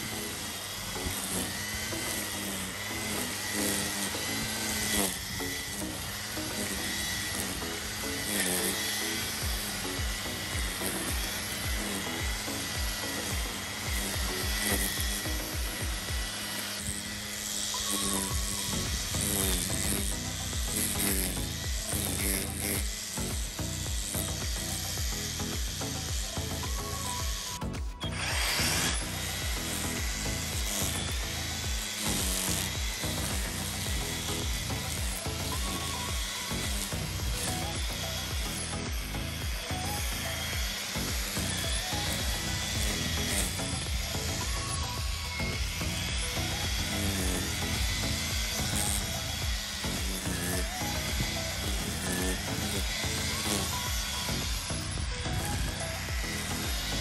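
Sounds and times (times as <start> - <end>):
string trimmer cutting grass: 0.0 - 57.0.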